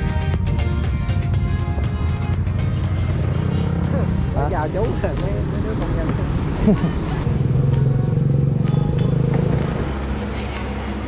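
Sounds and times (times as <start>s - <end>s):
motorcycle engine idling: 0.0s - 9.3s.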